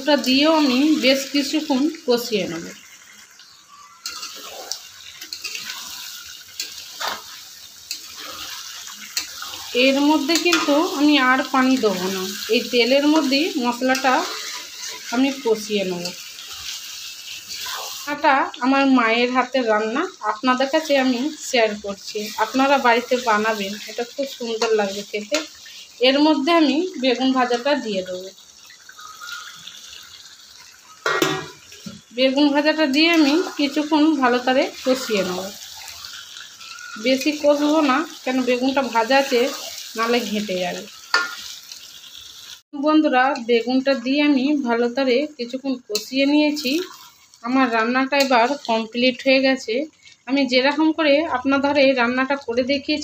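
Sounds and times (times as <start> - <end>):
thick curry bubbling and hissing: 0.0 - 19.0, 20.1 - 42.7, 45.9 - 49.0
food sizzling in a wok: 0.0 - 53.0.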